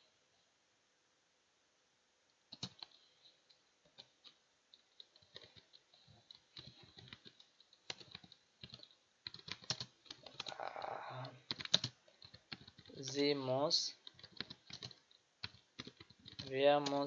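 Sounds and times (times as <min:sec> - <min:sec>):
computer keyboard typing: 0:02.5 - 0:17.0
person speaking: 0:10.2 - 0:14.2, 0:16.3 - 0:17.0.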